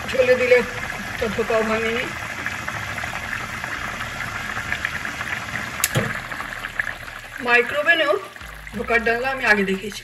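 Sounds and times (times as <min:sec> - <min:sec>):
gravy bubbling in a pan: 0:00.0 - 0:10.0.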